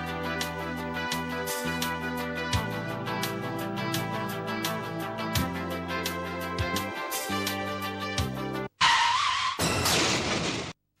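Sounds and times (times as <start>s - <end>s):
car tyres squealing: 8.8s - 10.6s
loud car crash: 8.8s - 10.8s.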